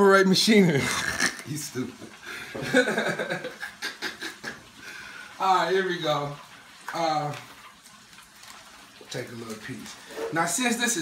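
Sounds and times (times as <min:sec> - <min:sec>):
man laughing hard: 0:02.6 - 0:04.7.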